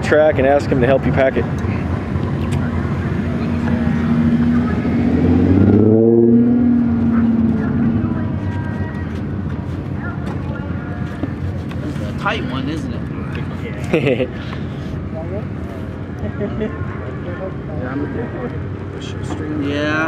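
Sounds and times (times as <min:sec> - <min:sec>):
vehicle engine running: 0:00.0 - 0:19.3.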